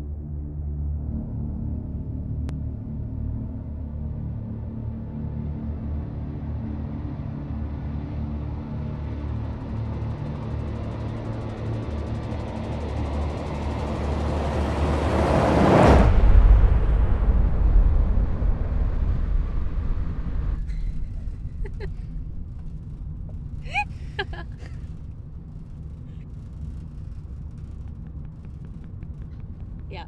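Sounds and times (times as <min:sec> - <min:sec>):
dark ambient drone: 0:00.0 - 0:30.0
car interior rumble: 0:09.1 - 0:30.0.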